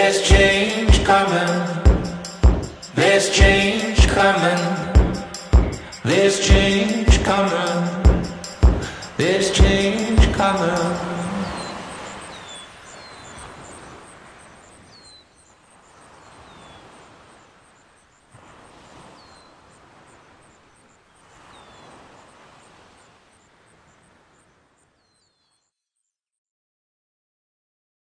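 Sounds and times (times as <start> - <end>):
falling bird chirps: 10.8 - 18.3, 18.9 - 25.8.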